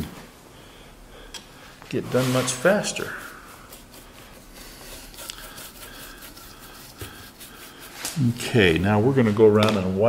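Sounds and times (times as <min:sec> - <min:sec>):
brush swishing strokes: 0:02.0 - 0:08.5.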